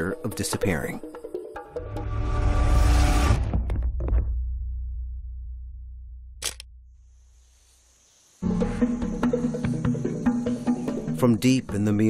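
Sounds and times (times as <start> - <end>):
camera shutter clicks: 6.4 - 6.7.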